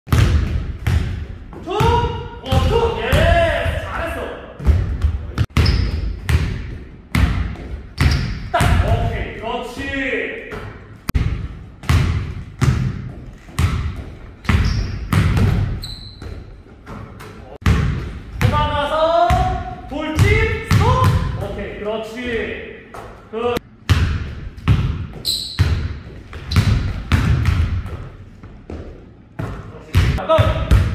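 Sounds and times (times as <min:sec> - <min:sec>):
basketball bouncing on hardwood: 0:00.1 - 0:03.3, 0:10.5 - 0:17.0, 0:23.9 - 0:28.1.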